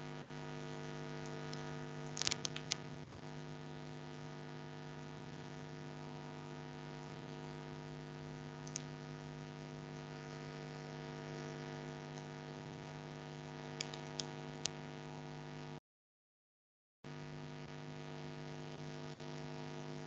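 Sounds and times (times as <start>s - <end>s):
electrical hum: 0.0s - 15.8s.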